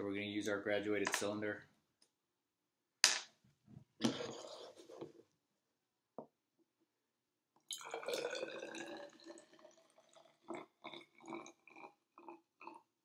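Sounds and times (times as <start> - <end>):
liquid pouring into cylinder: 7.7 - 12.9
liquid glugs and drips: 7.7 - 13.0.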